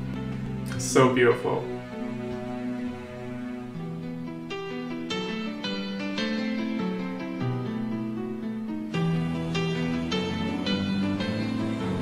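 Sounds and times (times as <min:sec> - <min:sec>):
slow piano chords: 0:00.0 - 0:12.0.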